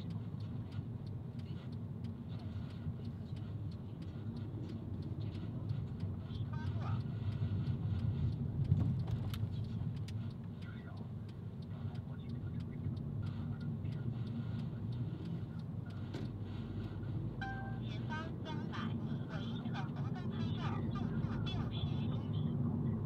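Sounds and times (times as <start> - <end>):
car engine and tyre rumble: 0.0 - 23.0.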